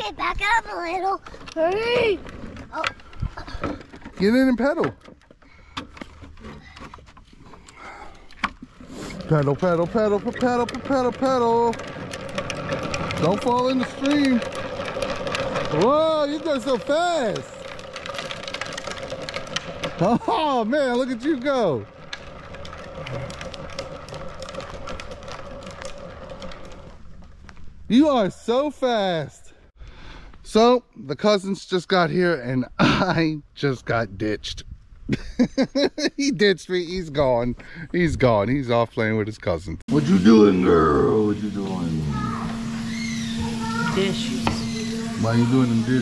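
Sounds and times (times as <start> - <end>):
plastic trike knocks and rattles: 0.0 - 28.8
plastic wheels rolling on asphalt: 0.0 - 29.4, 35.3 - 46.0.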